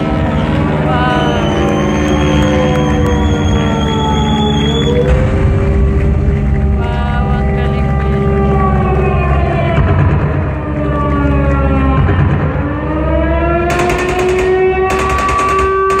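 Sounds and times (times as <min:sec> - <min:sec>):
siren-like wail: 0:00.0 - 0:16.0
steady low drone: 0:00.0 - 0:16.0.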